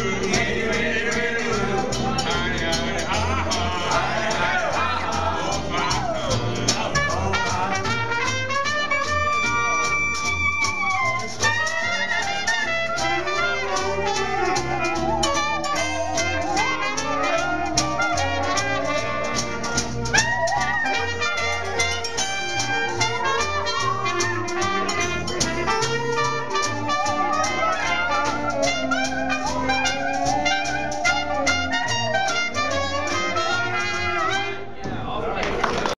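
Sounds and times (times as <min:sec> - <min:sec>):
jazz band playing: 0:00.0 - 0:34.8.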